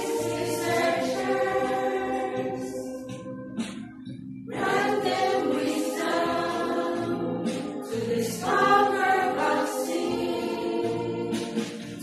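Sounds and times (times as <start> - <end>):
women's choir singing a hymn: 0.0 - 3.6, 4.5 - 12.0.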